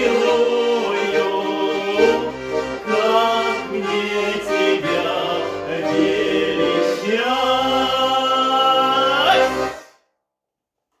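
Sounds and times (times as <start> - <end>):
accordions holding a chord: 0.0 - 10.0.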